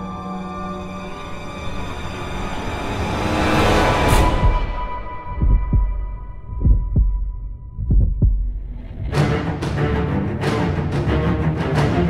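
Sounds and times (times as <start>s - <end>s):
heartbeat thumps: 4.2s - 9.8s.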